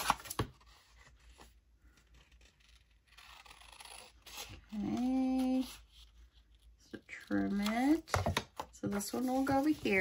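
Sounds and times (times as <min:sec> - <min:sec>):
scissor blades rasping along paper: 0:02.3 - 0:05.0.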